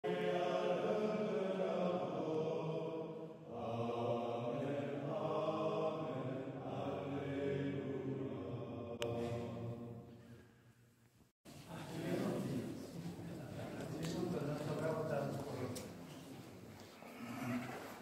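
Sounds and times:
men chanting in unison: 0.0s - 9.9s.

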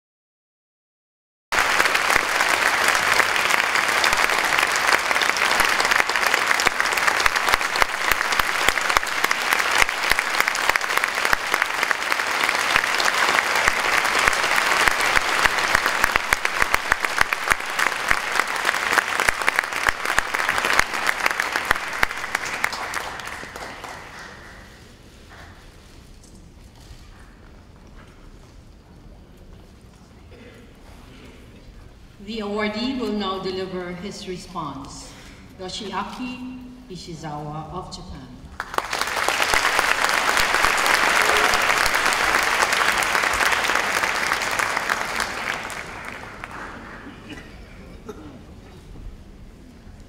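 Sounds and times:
audience applauding: 1.5s - 25.6s, 38.5s - 47.4s.

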